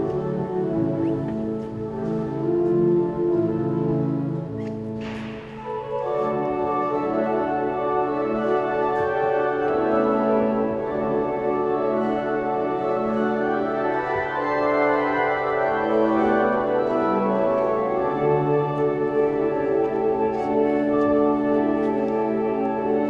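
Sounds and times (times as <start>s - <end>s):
pipe organ chords: 0.0s - 23.0s.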